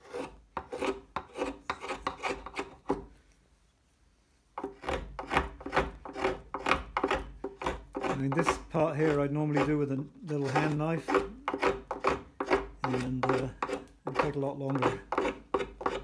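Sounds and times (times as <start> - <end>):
drawknife scraping wood: 0.0 - 3.1, 4.6 - 16.0.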